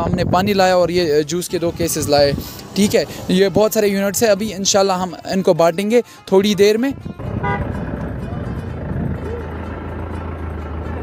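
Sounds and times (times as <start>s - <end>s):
highway traffic noise: 0.0s - 11.0s
vehicle engine running nearby: 6.9s - 11.0s
steady low drone: 7.0s - 11.0s.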